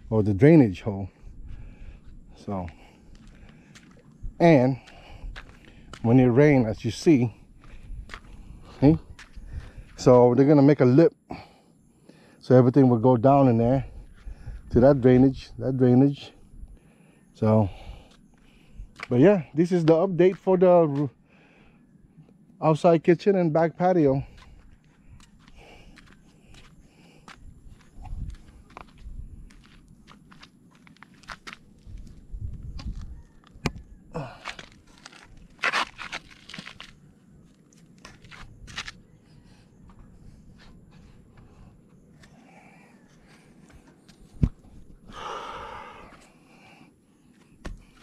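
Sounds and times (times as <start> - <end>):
footsteps on concrete: 1.5 - 6.2, 7.6 - 10.0, 18.1 - 21.1, 24.2 - 39.0, 47.3 - 48.0.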